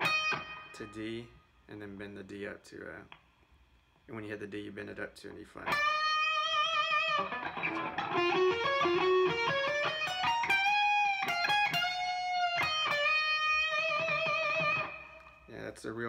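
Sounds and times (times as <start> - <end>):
electric guitar lead: 0.0 - 0.8, 5.6 - 15.5.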